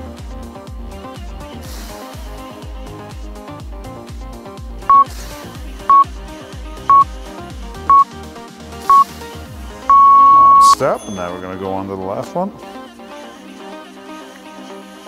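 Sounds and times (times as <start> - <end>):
timer long beep: 9.9 - 10.8
timer short beeps: 9.9 - 10.8.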